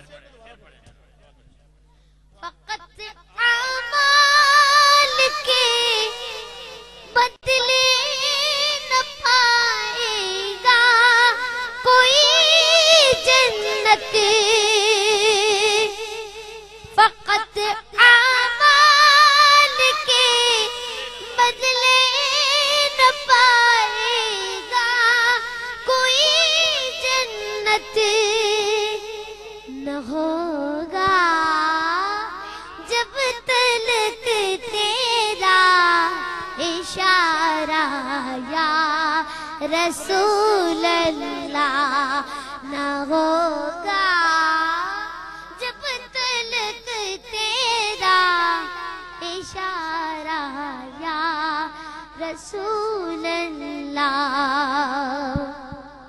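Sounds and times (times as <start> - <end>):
breath: 1.9 - 2.4, 32.4 - 32.8, 39.2 - 39.6, 42.2 - 42.6, 51.7 - 52.2
boy singing into microphone: 2.4 - 56.0.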